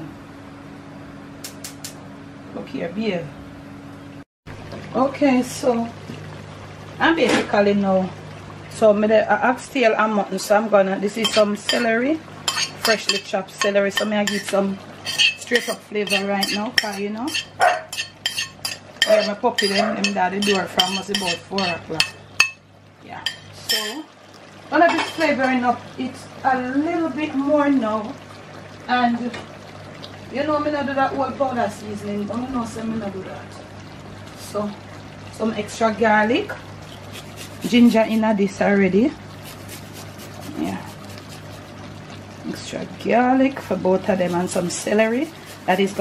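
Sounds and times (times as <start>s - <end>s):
stirring rustle: 11.1s - 22.6s, 36.6s - 46.0s
wooden spoon clinking on pot: 15.1s - 21.8s
steady low hum: 30.2s - 46.0s.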